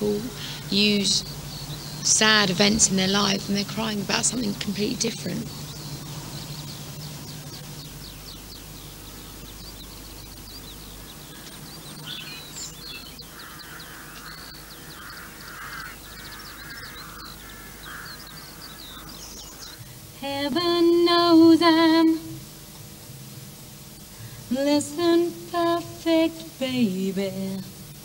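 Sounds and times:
small birds chirping: 0.0 - 26.6
crow cawing: 0.3 - 0.8, 13.2 - 19.9.

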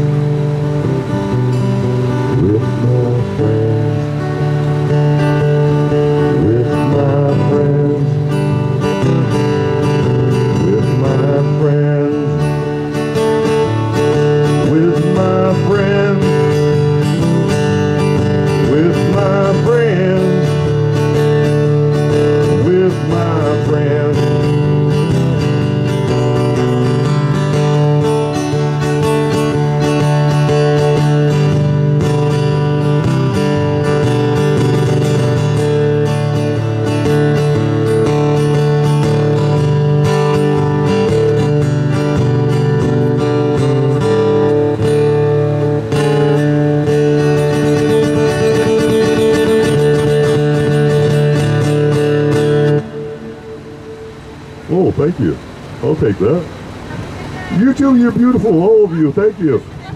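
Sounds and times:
acoustic guitar strumming: 0.0 - 59.9.

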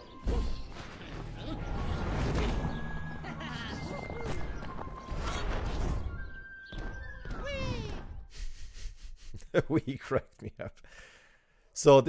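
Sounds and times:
animation music: 0.0 - 10.1.

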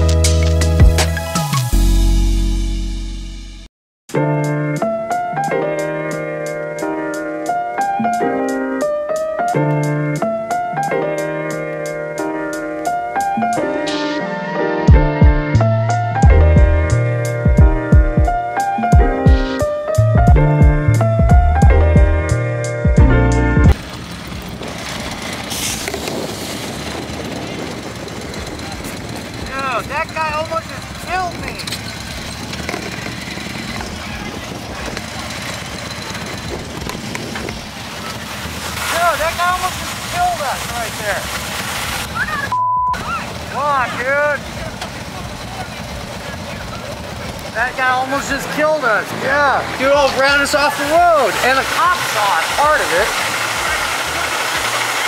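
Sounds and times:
backing music: 0.0 - 23.8
passing traffic: 4.8 - 55.0
wind on microphone: 24.3 - 38.1
people talking indistinctly: 28.5 - 31.8, 42.2 - 53.1.

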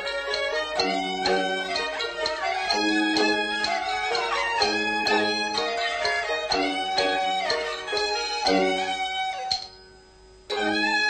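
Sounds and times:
sharp percussion beats: 0.0 - 11.0
strings: 0.0 - 11.0.

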